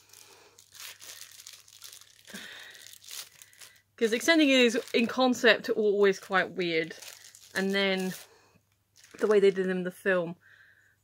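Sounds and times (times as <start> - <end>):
plastic packaging crinkling: 0.0 - 8.3, 8.9 - 9.9.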